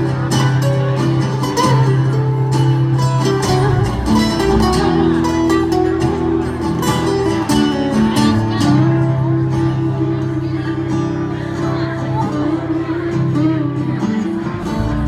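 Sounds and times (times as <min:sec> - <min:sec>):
acoustic guitars playing: 0:00.0 - 0:15.0.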